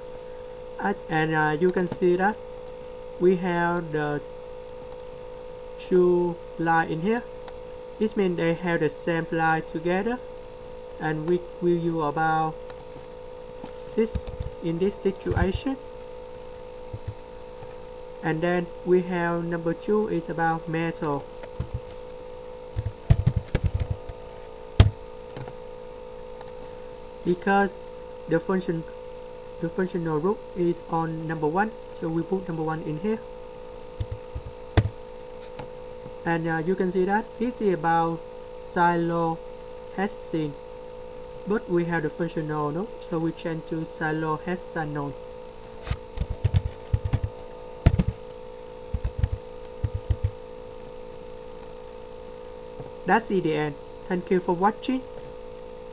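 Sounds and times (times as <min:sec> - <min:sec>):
steady electrical hum: 0:00.0 - 0:55.9
keyboard typing: 0:21.3 - 0:22.0, 0:22.8 - 0:24.2, 0:34.0 - 0:35.0, 0:46.1 - 0:48.3, 0:48.9 - 0:50.4.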